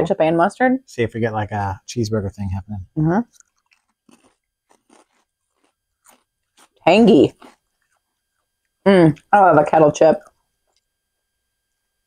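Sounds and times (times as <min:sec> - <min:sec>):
chips crunching: 0:03.3 - 0:07.9
person speaking: 0:06.8 - 0:07.5.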